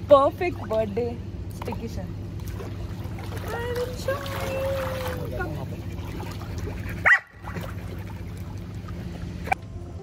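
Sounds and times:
dog barking: 7.0s - 7.4s.

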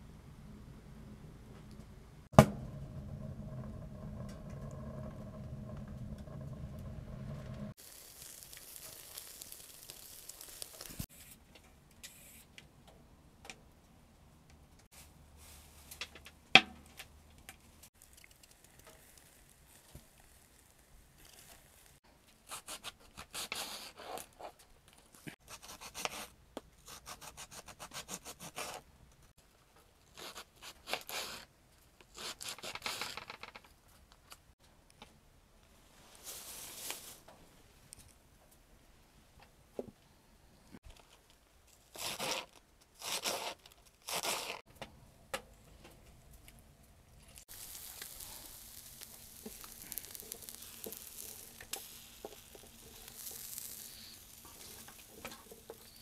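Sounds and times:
sharp knock: 2.4s - 2.7s
hiss: 7.8s - 11.1s, 47.5s - 56.0s
knife slicing cabbage: 42.0s - 44.6s.

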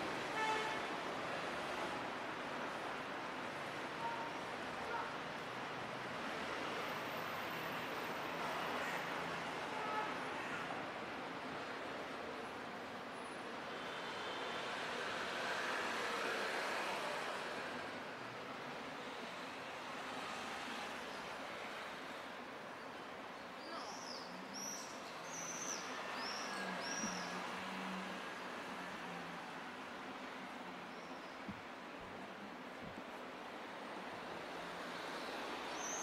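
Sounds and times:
traffic hiss: 11.5s - 36.0s.

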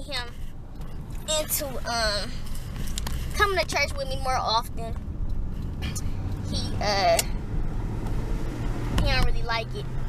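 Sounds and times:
car engine and road noise: 0.0s - 10.0s
woman speaking: 5.9s - 7.3s.

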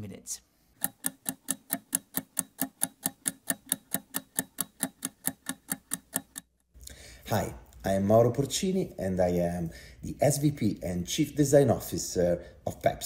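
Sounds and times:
clock ticking: 0.8s - 6.6s.

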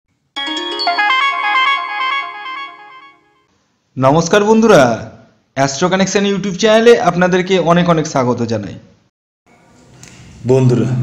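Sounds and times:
electronic synth jingle: 0.4s - 3.5s.

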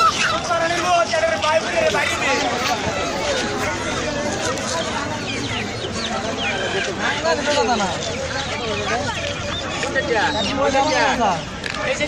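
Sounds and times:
crowd chatter: 0.0s - 12.0s
poultry calling: 1.8s - 11.4s.

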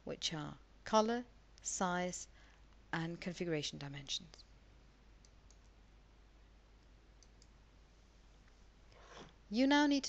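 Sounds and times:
low steady hum: 0.0s - 10.0s
computer mouse clicks: 5.2s - 5.8s, 6.8s - 7.6s.

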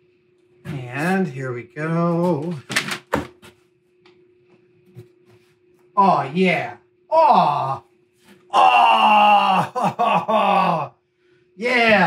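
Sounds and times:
man groaning: 7.1s - 7.9s, 8.5s - 11.0s
man saying oh: 7.1s - 7.9s.

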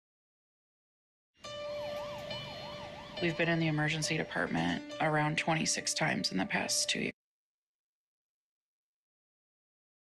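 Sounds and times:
emergency siren wailing: 1.5s - 4.8s.

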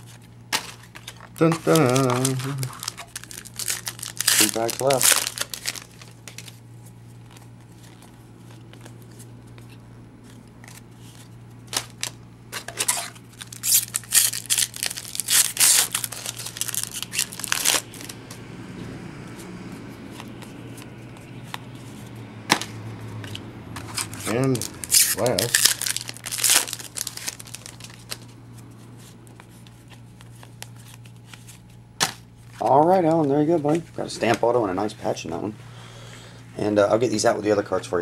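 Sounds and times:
foil wrappers crinkling and tearing: 0.0s - 18.2s, 23.8s - 31.8s
card handling: 0.0s - 18.5s, 19.3s - 34.6s
steady low hum: 0.0s - 38.0s.

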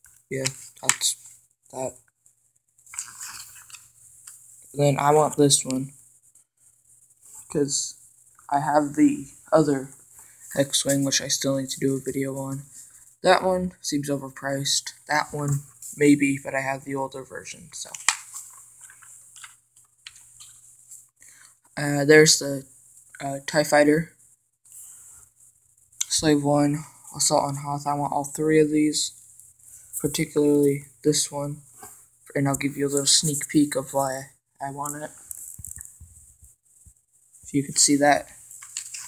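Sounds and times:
faint steady hum: 0.0s - 39.0s
paper page rustling: 2.8s - 4.4s, 17.9s - 21.1s, 38.4s - 39.0s.

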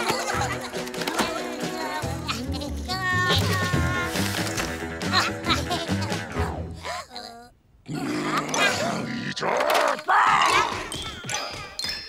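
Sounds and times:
high squeaky cartoon voices: 0.0s - 4.1s, 5.1s - 11.2s.

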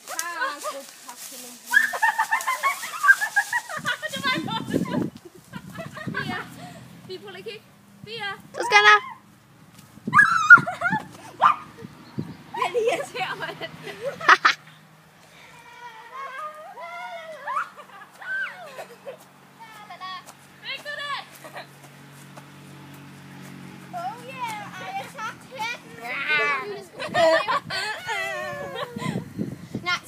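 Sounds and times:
girls talking and calling out: 0.0s - 9.4s, 10.0s - 14.4s, 15.3s - 22.0s, 23.4s - 30.0s.

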